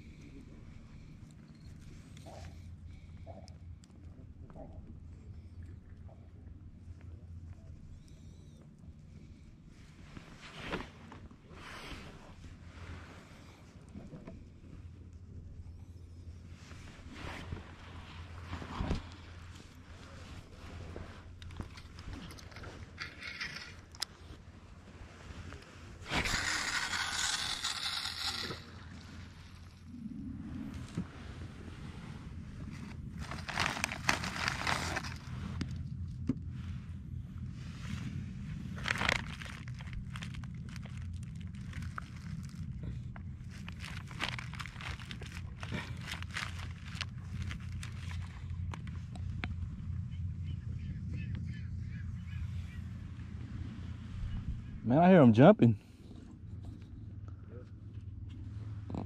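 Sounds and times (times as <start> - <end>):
low steady rumble: 0.0 - 59.0
rustling plastic bag and gear: 32.7 - 35.8, 38.7 - 49.0.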